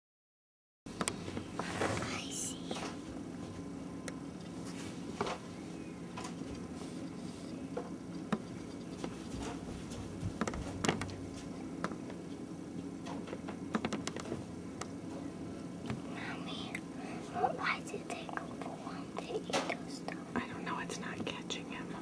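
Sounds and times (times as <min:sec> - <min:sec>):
steady low hum: 0:00.9 - 0:22.0.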